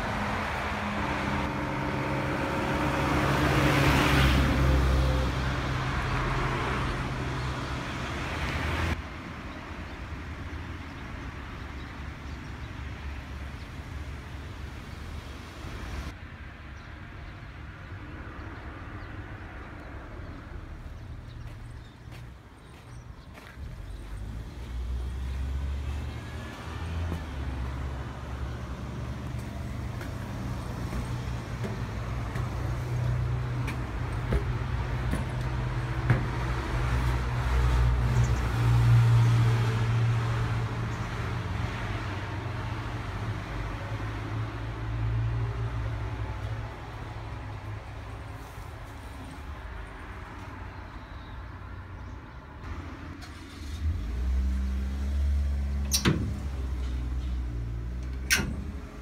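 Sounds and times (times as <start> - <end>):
road traffic passing: 0.0 - 59.0
vehicle passing: 23.3 - 50.7.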